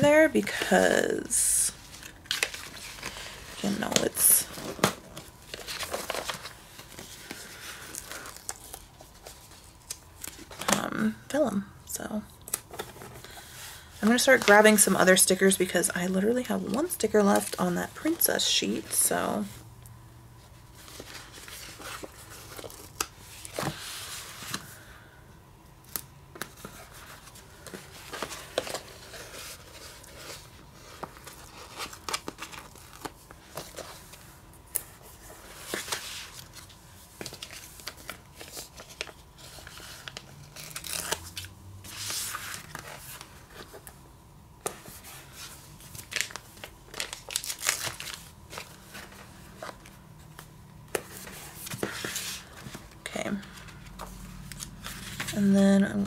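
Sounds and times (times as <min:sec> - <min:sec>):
paper rustling and crinkling: 0:01.7 - 0:10.8, 0:20.6 - 0:24.9, 0:25.9 - 0:44.0, 0:44.6 - 0:55.6.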